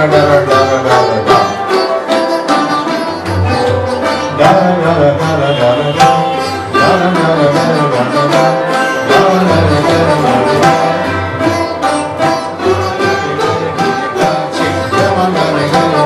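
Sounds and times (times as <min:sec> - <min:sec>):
sarod plucked notes: 0:00.0 - 0:16.0
tabla drumming: 0:00.0 - 0:16.0.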